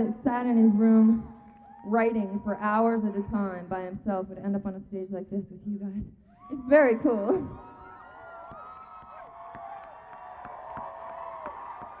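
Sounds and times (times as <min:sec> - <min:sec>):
crowd cheering and whooping: 0:00.4 - 0:03.7, 0:06.3 - 0:12.0
handclaps: 0:08.4 - 0:12.0.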